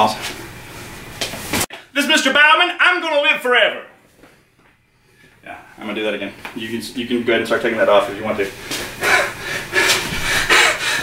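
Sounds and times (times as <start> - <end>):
man huffing breath: 9.0 - 11.0.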